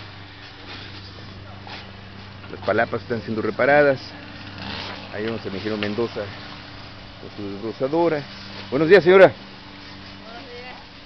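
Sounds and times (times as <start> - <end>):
engine running steadily: 0.0 - 11.0.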